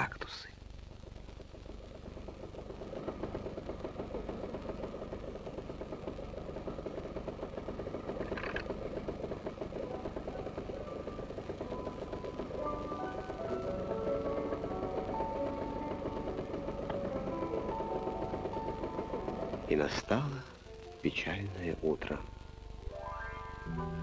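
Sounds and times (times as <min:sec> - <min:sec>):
cartoon car engine putt-putt rattle: 0:08.1 - 0:08.8
musical notes: 0:09.8 - 0:24.0.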